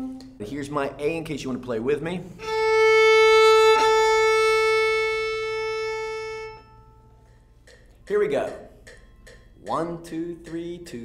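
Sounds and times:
violin bowing long note: 0:02.4 - 0:07.0.

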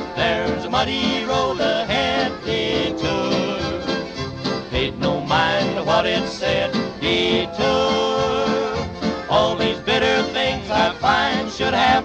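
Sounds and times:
country music: 0:00.0 - 0:12.0.

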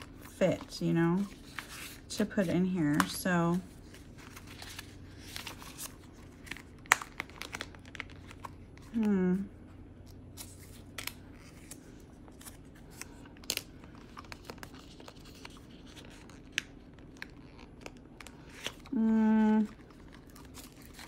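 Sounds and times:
paper and plastic rustling: 0:00.0 - 0:09.1, 0:10.4 - 0:21.0.

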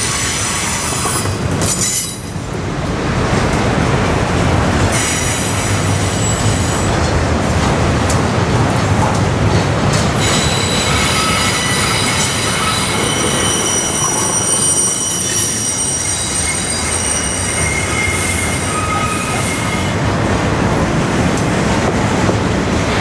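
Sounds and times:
train wheels rumbling on rail: 0:00.0 - 0:23.0
wheels squealing: 0:10.2 - 0:20.0.

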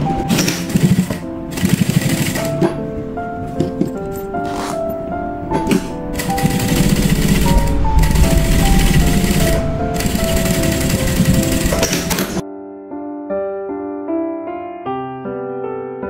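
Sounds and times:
background music: 0:00.0 - 0:16.0
sewing machine running: 0:00.3 - 0:02.7, 0:05.7 - 0:12.4.

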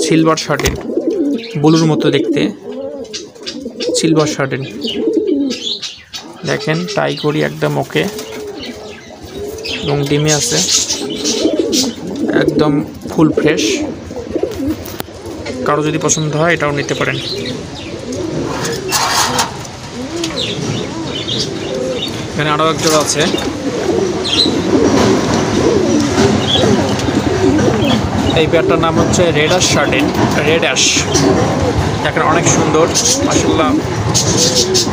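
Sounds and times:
pigeons cooing: 0:00.0 - 0:34.9.

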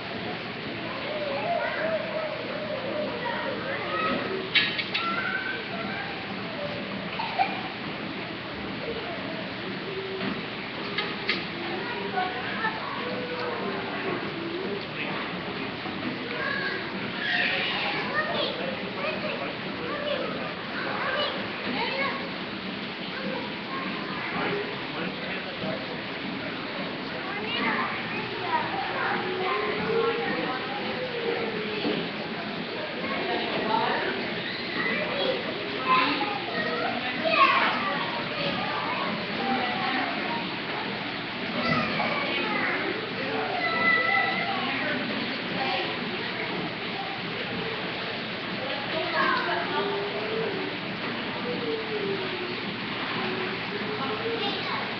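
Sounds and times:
children's voices babbling: 0:00.0 - 0:54.9.

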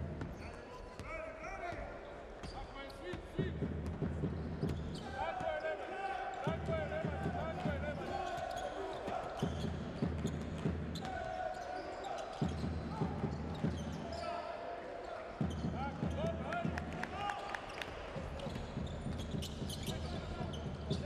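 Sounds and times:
shoe squeaks: 0:02.0 - 0:03.1, 0:08.1 - 0:15.8, 0:18.4 - 0:21.0.

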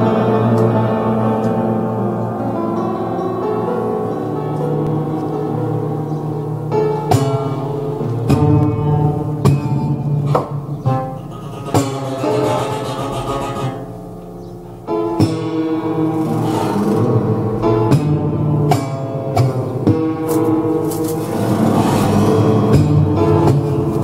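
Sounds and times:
metal strings struck and plucked: 0:08.2 - 0:14.0.

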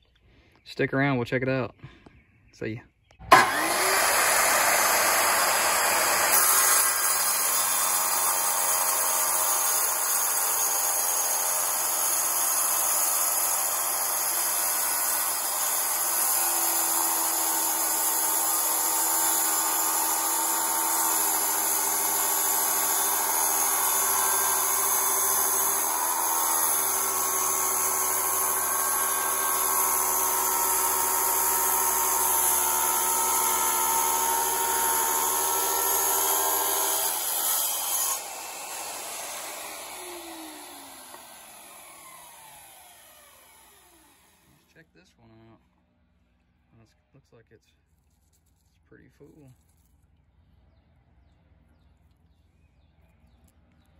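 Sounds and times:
saw spinning down whine: 0:03.2 - 0:44.6
tile saw cutting stone: 0:03.2 - 0:44.6.

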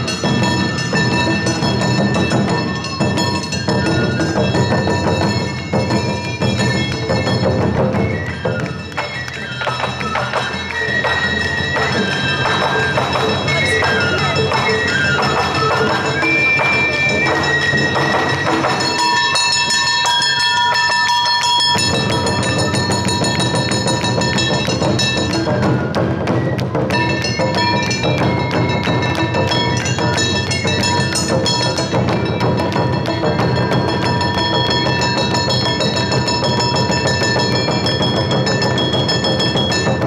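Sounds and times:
deep taiko drums: 0:00.0 - 0:19.9, 0:21.6 - 0:40.0
bamboo flutes playing high notes: 0:00.0 - 0:40.0.

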